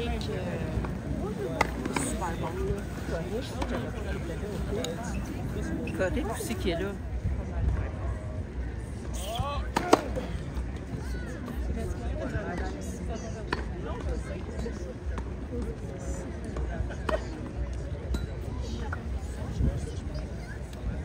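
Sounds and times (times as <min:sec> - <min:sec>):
people talking: 0:00.0 - 0:21.0.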